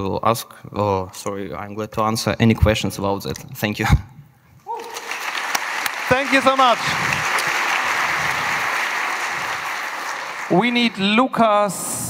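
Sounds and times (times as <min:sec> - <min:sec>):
audience applause: 0:04.7 - 0:11.7.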